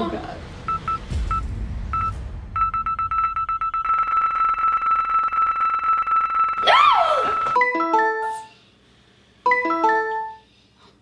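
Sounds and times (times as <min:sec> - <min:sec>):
electronic beeps: 0:00.7 - 0:05.0.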